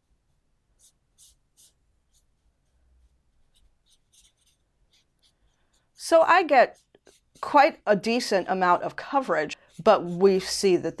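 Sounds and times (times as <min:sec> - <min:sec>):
dry brush scratching on paper: 0:00.3 - 0:11.0.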